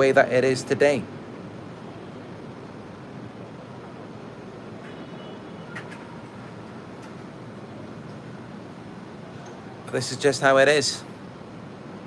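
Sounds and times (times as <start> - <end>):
steady ambient hum: 0.0 - 12.0.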